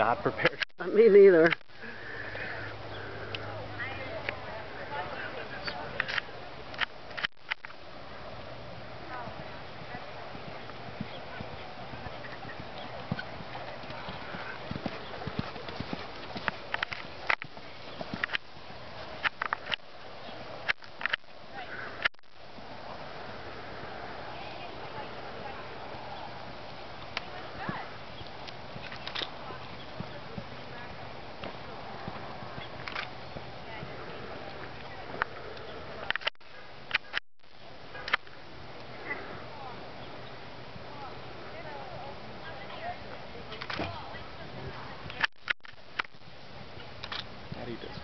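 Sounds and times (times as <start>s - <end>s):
background hiss: 0.0s - 48.0s
horse hoofbeats on dirt: 9.1s - 21.4s, 24.5s - 35.3s.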